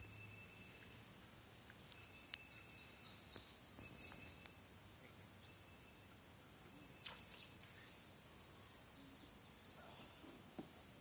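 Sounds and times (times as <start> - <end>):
river ambience: 0.0 - 11.0.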